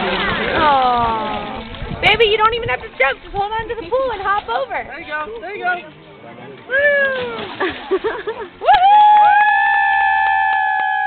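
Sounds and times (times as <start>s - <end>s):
high voices cheering woo: 8.6s - 11.0s.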